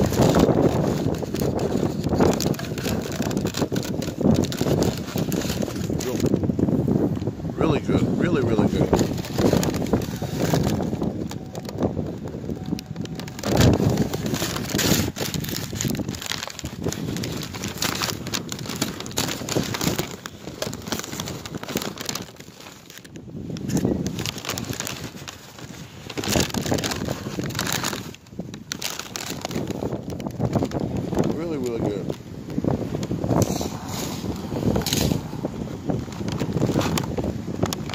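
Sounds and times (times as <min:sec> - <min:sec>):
phone handling rustle: 0:00.0 - 0:06.5, 0:08.9 - 0:37.9
wind on microphone: 0:00.0 - 0:37.9.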